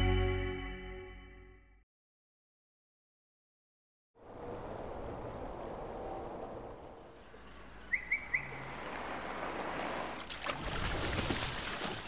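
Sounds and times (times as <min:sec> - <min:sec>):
bird chirping: 0:07.3 - 0:08.7.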